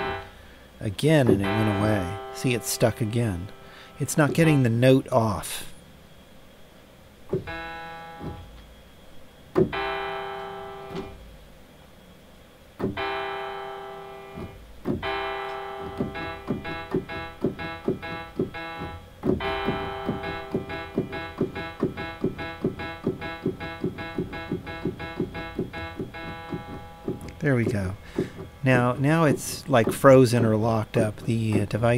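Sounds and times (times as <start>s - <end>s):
piano notes: 0.0s - 5.7s, 7.3s - 8.7s, 9.6s - 11.2s, 12.8s - 31.9s.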